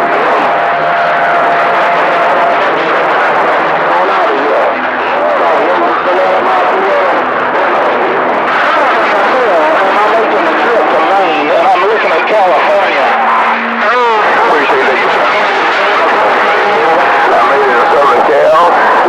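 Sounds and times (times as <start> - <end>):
garbled radio voices: 0.0 - 19.0
radio static: 0.0 - 19.0.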